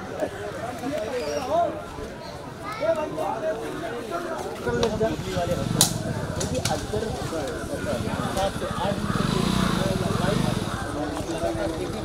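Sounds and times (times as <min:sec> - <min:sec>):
people talking: 0:00.0 - 0:12.0
small engine running: 0:05.0 - 0:12.0.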